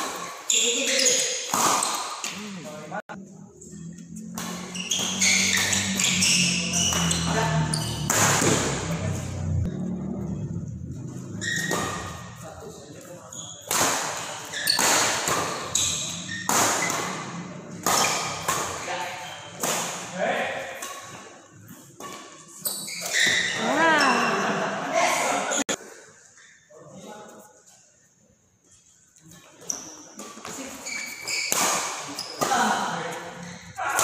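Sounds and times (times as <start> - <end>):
rackets striking shuttlecock: 4.3 - 9.0.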